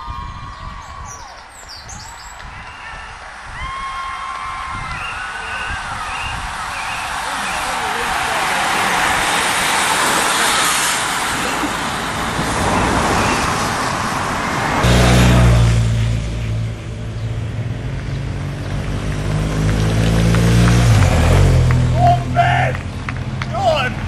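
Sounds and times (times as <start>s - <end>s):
cyclists and cars passing: 0.0s - 24.0s
engine humming: 6.1s - 24.0s.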